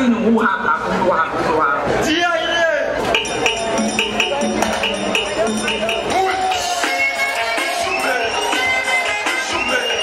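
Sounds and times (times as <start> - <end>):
calypso band playing: 3.0 - 10.0.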